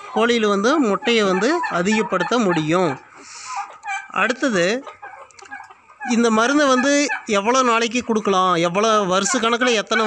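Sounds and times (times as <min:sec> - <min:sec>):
person speaking: 0:00.0 - 0:05.0
turkeys calling: 0:00.0 - 0:10.0.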